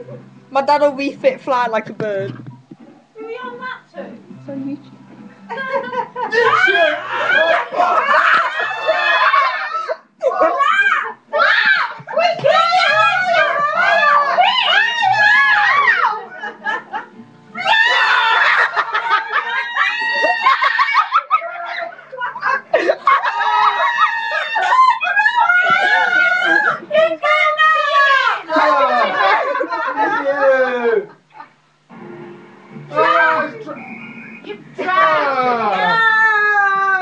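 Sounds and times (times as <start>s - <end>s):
laughter: 5.5s - 10.5s, 16.1s - 17.1s, 18.0s - 26.8s, 28.5s - 31.5s
shrieking and squealing voices: 6.3s - 16.4s, 17.6s - 29.0s, 33.0s - 37.0s.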